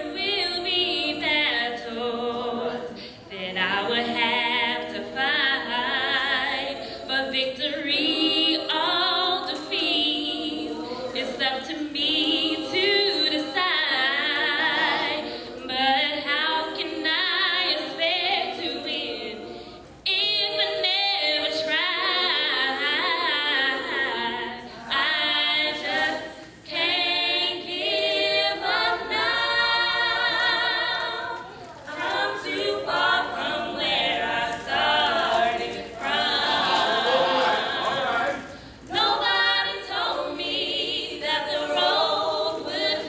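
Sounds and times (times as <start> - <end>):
women singing a cappella: 0.0 - 43.0.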